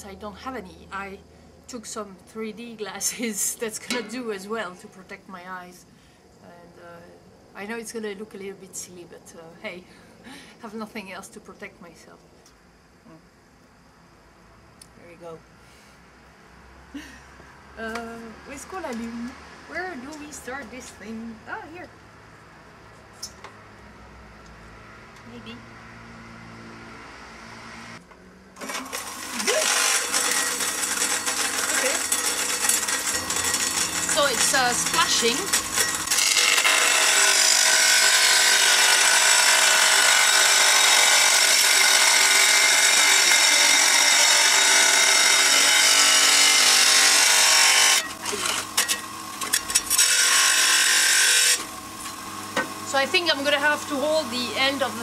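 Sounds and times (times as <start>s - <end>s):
saw motor humming: 25.1s - 55.0s.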